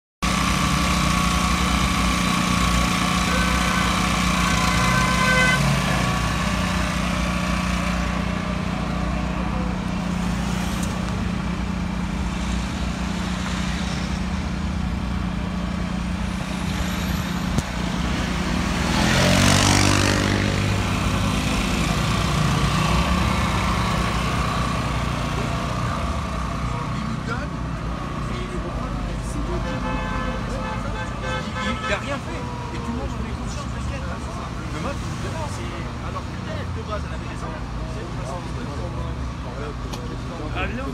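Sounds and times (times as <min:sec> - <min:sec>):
road traffic engine drone: 0:00.2 - 0:40.9
vehicle passing close by: 0:16.5 - 0:25.8.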